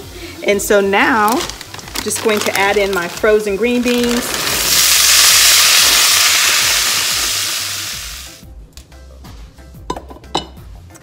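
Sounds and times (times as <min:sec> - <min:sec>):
vegetables sizzling in hot fat: 0:00.0 - 0:08.4.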